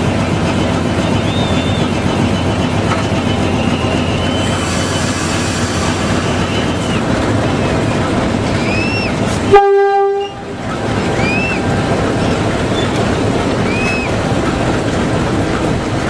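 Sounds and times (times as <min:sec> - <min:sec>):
locomotive diesel engine running: 0:00.0 - 0:16.0.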